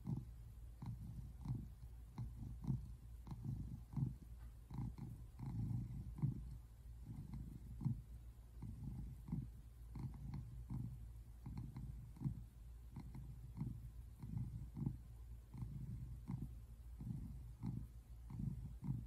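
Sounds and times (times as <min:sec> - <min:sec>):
cat purring: 0:00.0 - 0:19.0.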